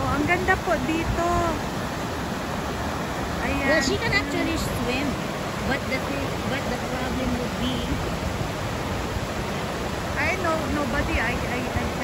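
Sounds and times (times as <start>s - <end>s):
river rushing over rocks: 0.0s - 12.0s.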